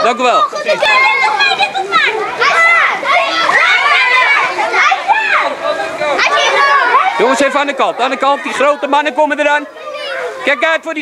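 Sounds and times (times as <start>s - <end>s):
children shouting while playing: 0.0s - 11.0s.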